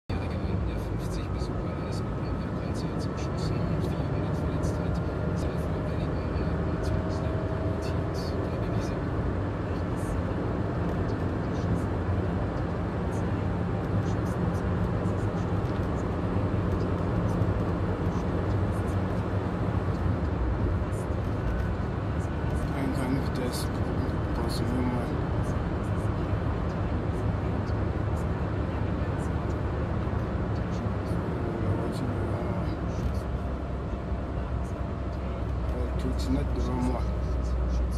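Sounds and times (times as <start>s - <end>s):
car road and engine rumble: 0.0s - 37.9s.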